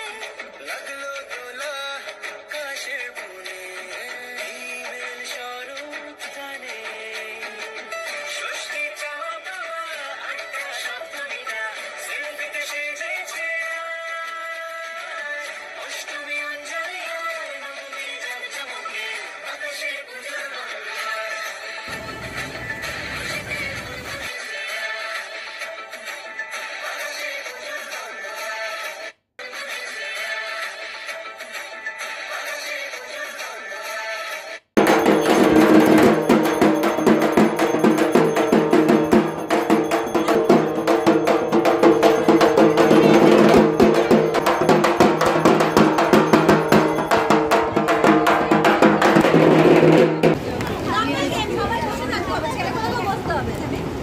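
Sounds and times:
background music: 0.0 - 50.3
people chattering: 21.9 - 24.3, 42.2 - 54.0.

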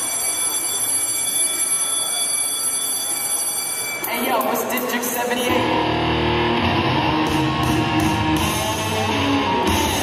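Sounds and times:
high ringing tones: 0.0 - 4.6.

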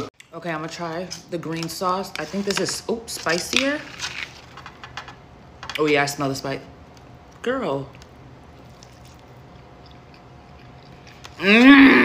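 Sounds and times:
faint steady hum: 0.0 - 12.0
person chewing softly: 6.9 - 11.5.

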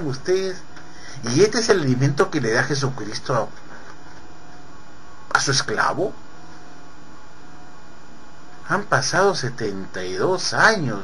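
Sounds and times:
man speaking: 0.0 - 3.6, 5.3 - 6.2, 8.6 - 11.0
background hiss: 0.0 - 11.0
electrical hum: 0.0 - 11.0.

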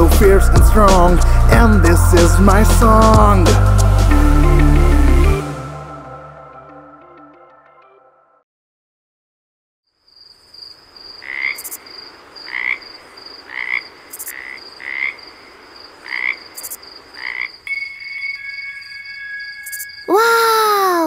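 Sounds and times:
high insect trill: 10.0 - 20.7
frog croaking: 10.6 - 20.1
held high tones: 17.7 - 21.0.

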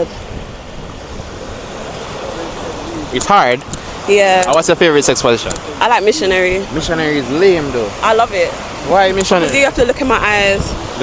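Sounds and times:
surf rushing: 0.0 - 11.0
wind on microphone: 0.0 - 11.0.

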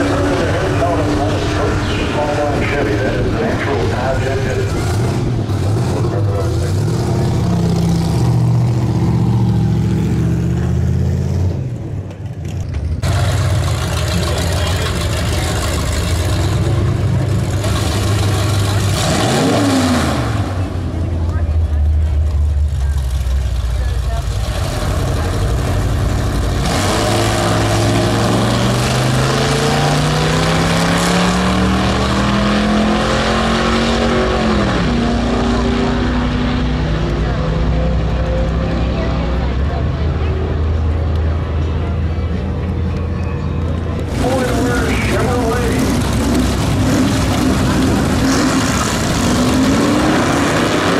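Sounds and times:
drag racing car engines: 0.0 - 50.9.

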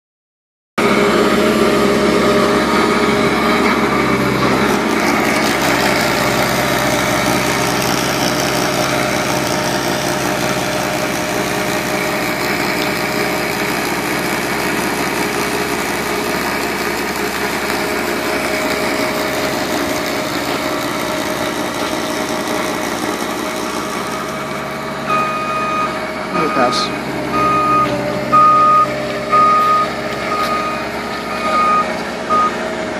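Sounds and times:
snowblower throwing snow: 0.8 - 25.1
diesel engine running under load: 0.8 - 32.9
reversing beeper: 24.0 - 32.7.

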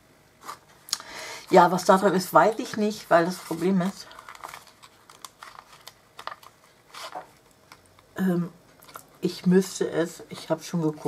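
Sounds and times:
paper box rustling: 2.6 - 7.8.

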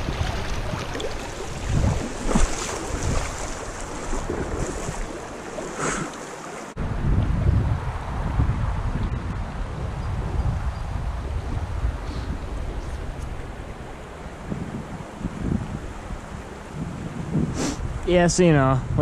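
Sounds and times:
wind buffeting microphone: 0.0 - 6.1, 6.7 - 19.0
running creek water: 0.0 - 18.7.

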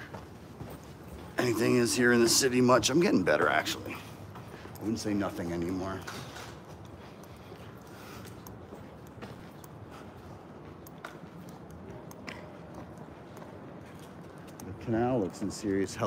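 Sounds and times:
faint city ambience: 0.0 - 16.0
light clicks and ticks: 3.4 - 16.0.

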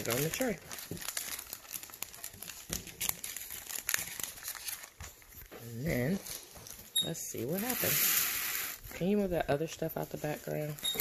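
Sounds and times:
plastic packaging rustling: 0.0 - 11.0.

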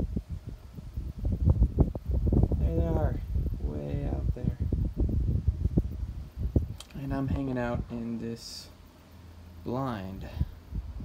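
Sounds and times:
wind buffeting microphone: 0.0 - 8.5, 10.2 - 11.0.

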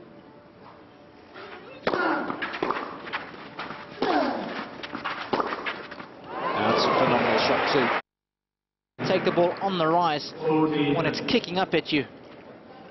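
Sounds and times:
racket hitting tennis ball: 1.8 - 6.1.

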